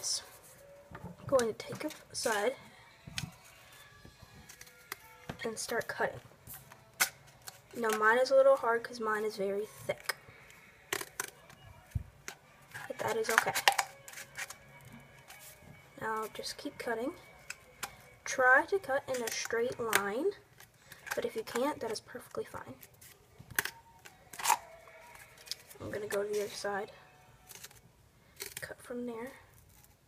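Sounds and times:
scissors snipping cardboard tube: 12.2 - 14.6.

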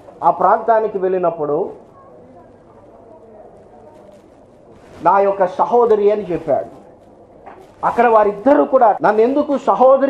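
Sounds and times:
faint low murmur: 0.0 - 10.0.

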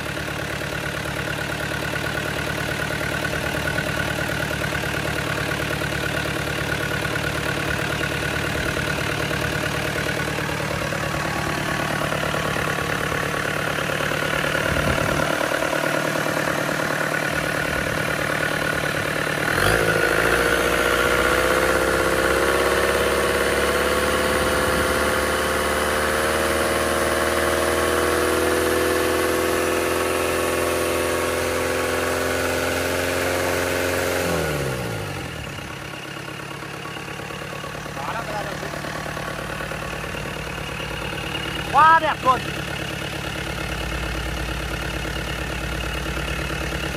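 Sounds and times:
diesel engine running: 0.0 - 46.9.

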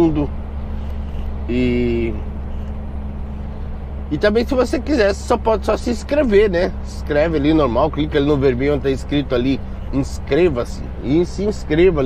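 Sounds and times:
diesel truck engine drone: 0.0 - 12.0
road noise: 0.0 - 12.0.

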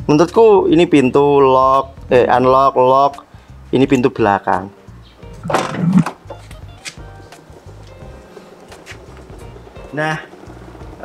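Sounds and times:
background music low notes: 0.0 - 11.0.

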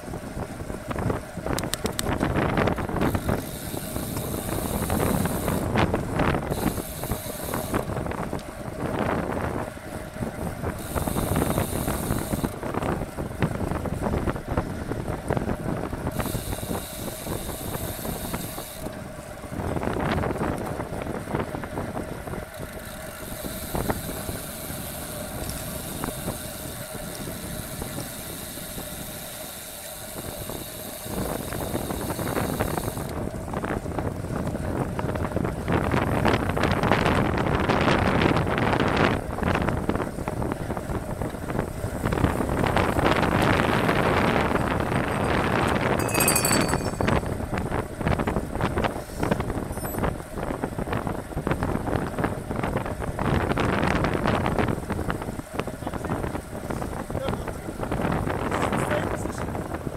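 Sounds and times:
wind rushing over microphone: 0.0 - 29.2, 30.2 - 59.9
bicycle tyre and drivetrain noise: 0.0 - 59.9.

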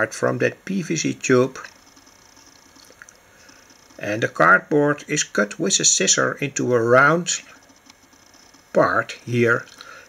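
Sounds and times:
soft clicks: 7.4 - 8.8.

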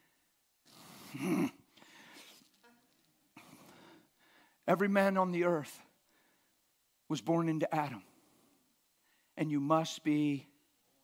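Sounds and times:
faint breathing: 0.0 - 2.5, 3.4 - 4.7, 6.0 - 6.7, 8.1 - 9.4
man grunting into microphone: 1.0 - 1.6.

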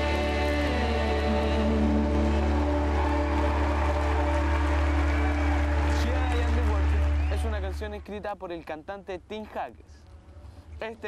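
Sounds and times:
live band worship music: 0.0 - 7.2.

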